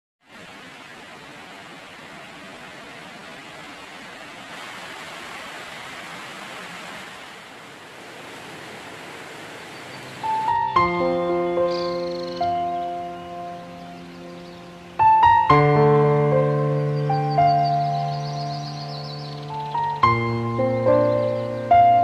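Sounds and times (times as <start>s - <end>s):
steady rain hiss: 0.2s - 22.0s.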